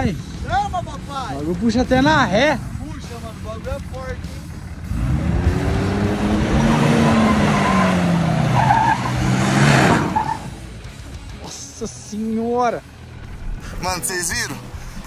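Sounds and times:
truck engine revving hard: 0:04.8 - 0:10.8.

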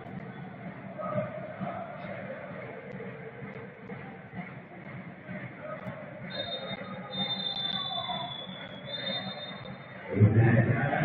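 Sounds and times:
low crowd murmur: 0:00.0 - 0:11.0
referee's whistle blasts: 0:06.3 - 0:09.8.

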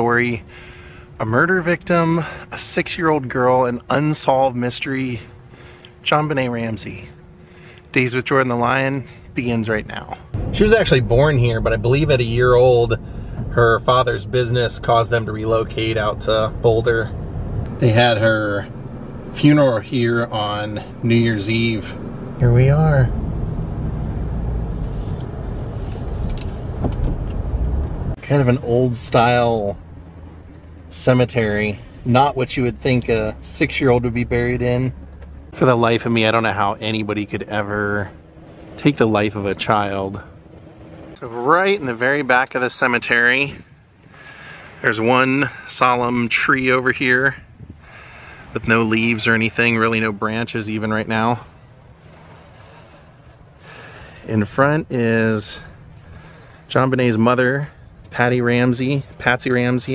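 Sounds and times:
engine and road rumble: 0:00.0 - 0:59.9
steady low hum: 0:00.0 - 0:59.9.

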